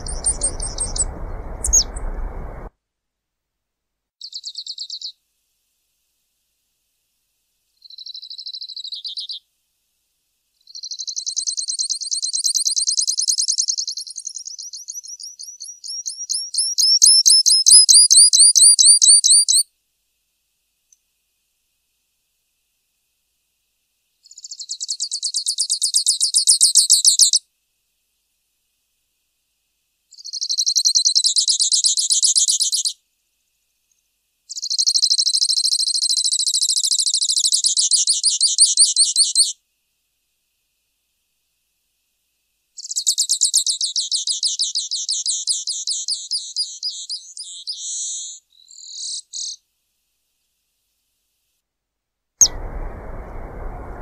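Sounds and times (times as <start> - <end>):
finch trilling song: 0.0 - 2.5
steady low hiss: 0.0 - 2.7, 52.4 - 54.0.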